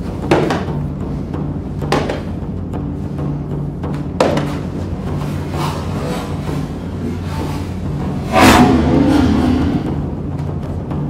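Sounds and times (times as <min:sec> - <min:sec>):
background music with low tones: 0:00.0 - 0:11.0.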